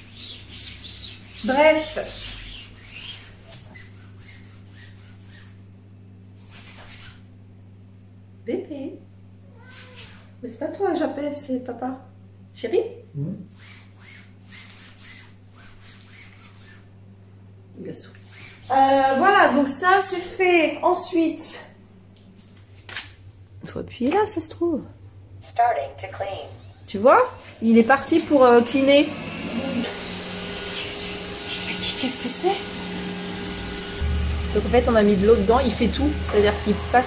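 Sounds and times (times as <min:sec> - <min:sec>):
steady low hum: 0:00.0 - 0:37.0
soft rustling and rubbing: 0:01.2 - 0:05.6, 0:13.6 - 0:16.9
robot vacuum motor hum: 0:26.1 - 0:37.0.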